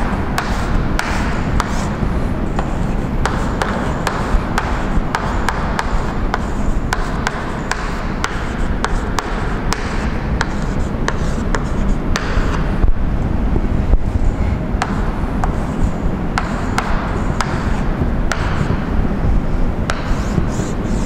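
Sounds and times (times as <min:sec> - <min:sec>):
chalk scratching on blackboard: 0:00.0 - 0:12.6, 0:19.9 - 0:21.0
sharp chalk taps: 0:00.0 - 0:12.7, 0:14.8 - 0:18.9, 0:19.9 - 0:21.0
low background rumble: 0:00.0 - 0:21.0.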